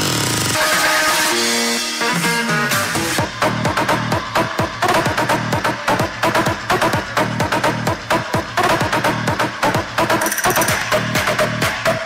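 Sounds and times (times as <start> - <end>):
electronic dance music: 0.0 - 12.0
kick drum beat: 2.8 - 12.0.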